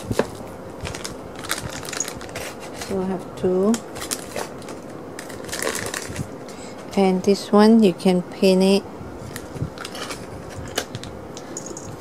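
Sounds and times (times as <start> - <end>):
paper and plastic rustling: 0.0 - 3.1, 3.9 - 6.4, 9.2 - 11.1.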